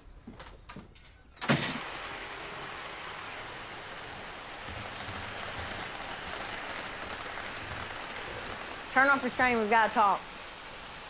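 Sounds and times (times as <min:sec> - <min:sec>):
model train whirring rumble: 0:01.5 - 0:11.0.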